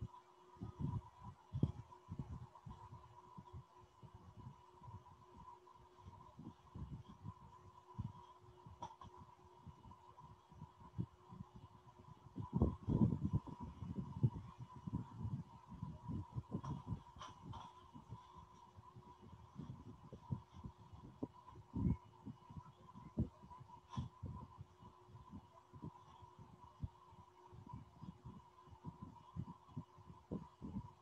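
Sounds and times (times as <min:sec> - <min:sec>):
low rumbles and thumps: 0:00.6 - 0:31.0.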